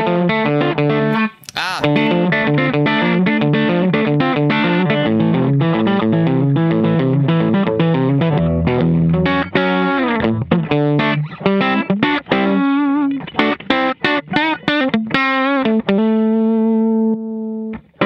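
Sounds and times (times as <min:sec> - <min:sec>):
electric guitar lick: 0:00.0 - 0:18.0.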